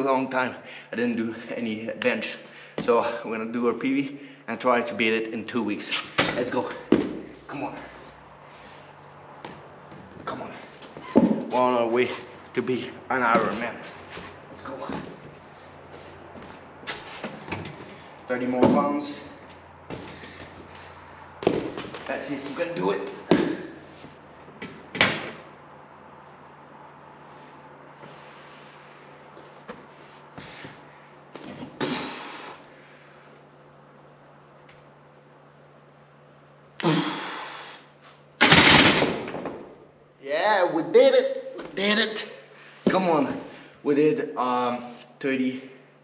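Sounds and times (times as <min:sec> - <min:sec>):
forceful breaths: 0:02.4 - 0:03.3, 0:19.9 - 0:21.4
shuffling movement: 0:07.4 - 0:22.8.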